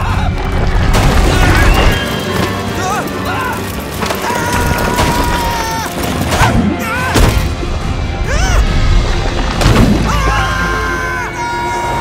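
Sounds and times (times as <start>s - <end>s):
orchestral score: 0.0s - 12.0s.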